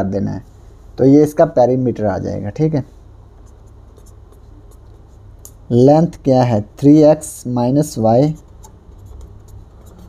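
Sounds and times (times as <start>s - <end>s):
steady low hum: 0.0s - 10.0s
marker writing on paper: 3.4s - 5.7s, 7.9s - 10.0s.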